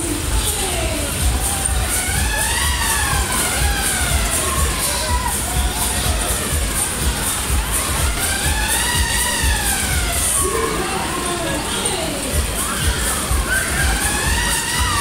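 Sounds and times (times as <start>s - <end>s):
ride music with bass beat: 0.0s - 15.0s
riders shouting and cheering: 0.0s - 15.0s.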